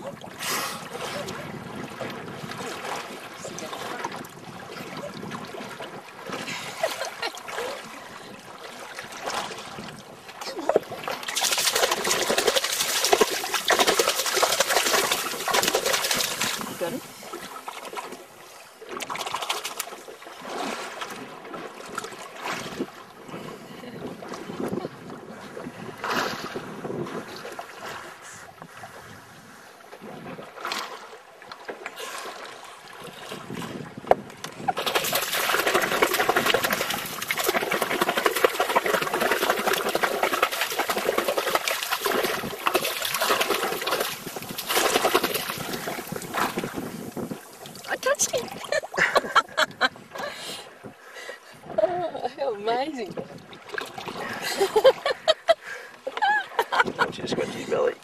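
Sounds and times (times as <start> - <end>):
water lapping against boat: 0.0 - 58.0.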